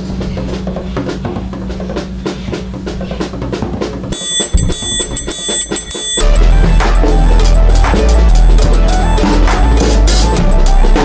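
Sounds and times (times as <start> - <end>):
drum kit playing fast: 0.0 - 11.0
sustained high tones: 4.2 - 9.7
steady bass line: 4.2 - 11.0.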